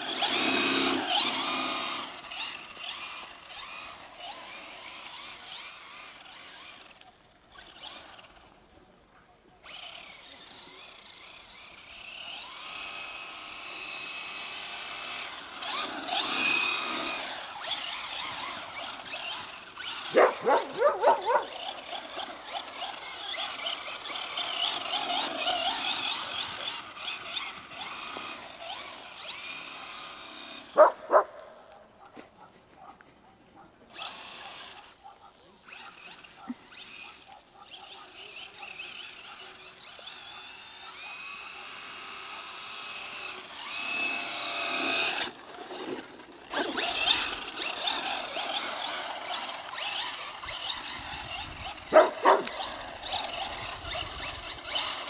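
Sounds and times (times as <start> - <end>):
rc truck electric motor whining: 0.0 - 8.7, 9.6 - 31.5, 33.9 - 55.0
dog barking: 20.1 - 21.6, 30.8 - 31.4, 32.0 - 33.8, 35.0 - 39.5, 40.4 - 42.5, 51.9 - 52.7.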